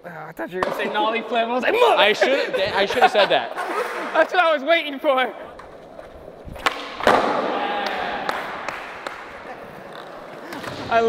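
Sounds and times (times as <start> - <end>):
skateboard wheels rolling on concrete: 0.6 - 11.0
skateboard smacking down on concrete: 5.4 - 10.9.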